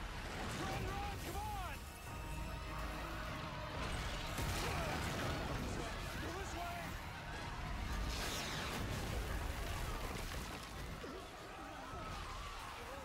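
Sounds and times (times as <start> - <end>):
background music: 0.0 - 8.1
people screaming: 0.5 - 13.0.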